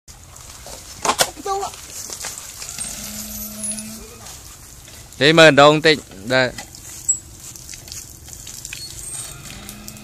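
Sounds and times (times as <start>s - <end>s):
water splashing on ground: 0.1s - 10.0s.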